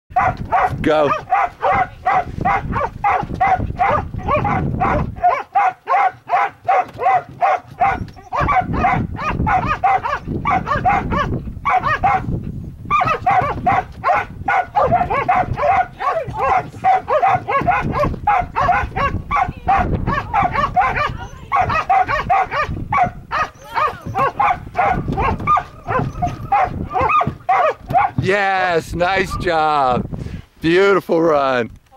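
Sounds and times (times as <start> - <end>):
dog barking: 0.1 - 12.3, 12.9 - 28.2.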